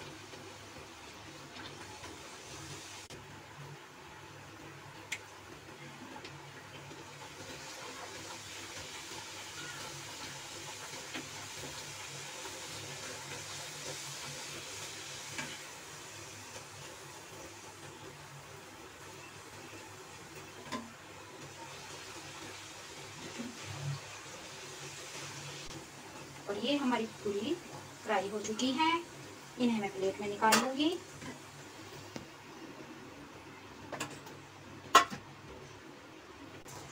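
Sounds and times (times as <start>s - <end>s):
oil sizzling: 0.0s - 36.9s.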